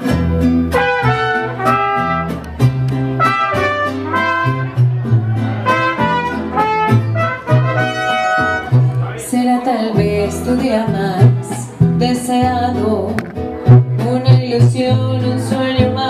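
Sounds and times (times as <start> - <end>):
bass notes: 0.0 - 9.4, 10.0 - 16.0
strummed guitars: 0.0 - 16.0
trumpets playing melody: 0.7 - 2.5, 3.2 - 4.9, 5.5 - 8.8.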